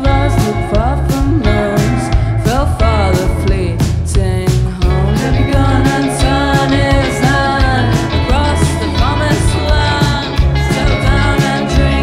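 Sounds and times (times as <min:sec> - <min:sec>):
drum and cymbal hits: 0:00.0 - 0:12.0
rock band playing: 0:00.0 - 0:12.0
woman singing into a microphone: 0:00.0 - 0:12.0.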